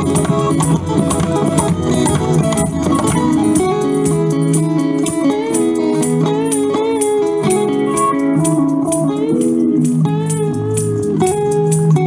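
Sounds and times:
amplified guitar melody: 0:00.0 - 0:12.0
steady percussion beat: 0:00.0 - 0:12.0.

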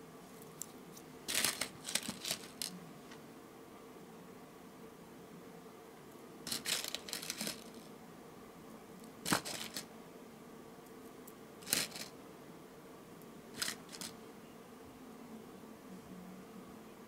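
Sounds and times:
rustling: 0:00.3 - 0:03.2, 0:06.5 - 0:07.9, 0:09.2 - 0:09.9, 0:11.6 - 0:12.1, 0:13.6 - 0:14.2.

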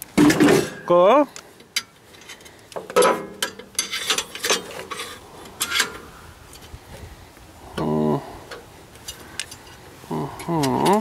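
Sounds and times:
metal scraping and clicking: 0:01.7 - 0:06.8.

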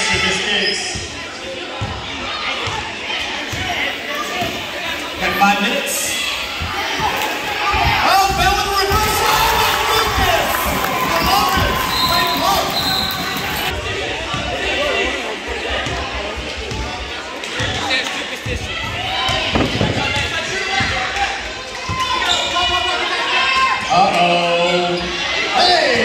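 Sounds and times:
chatter of spectators: 0:00.0 - 0:26.0.

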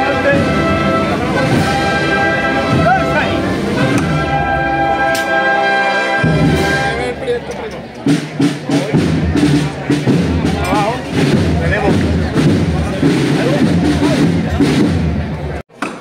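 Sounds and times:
processional band drums beating: 0:00.0 - 0:15.6
crowd chatter: 0:00.0 - 0:16.0.

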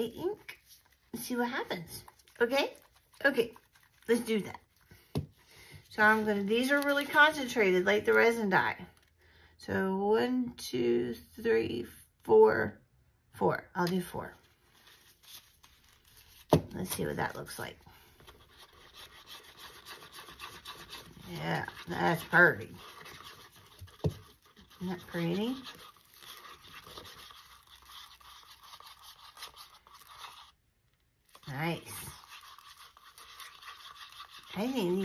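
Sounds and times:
stick scraping paper cup: 0:00.0 - 0:05.3, 0:18.1 - 0:30.7, 0:31.3 - 0:35.0.

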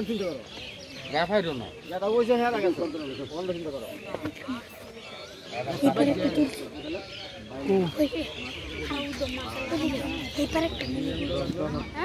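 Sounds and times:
several people talking: 0:00.0 - 0:12.0.

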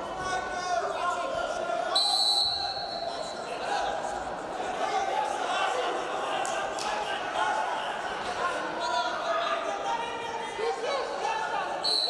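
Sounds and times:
crowd calling and chattering: 0:00.0 - 0:12.0.

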